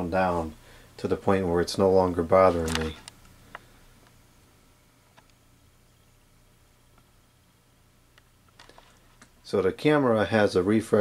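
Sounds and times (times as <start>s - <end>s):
fluorescent light ballast hum: 0.0s - 11.0s.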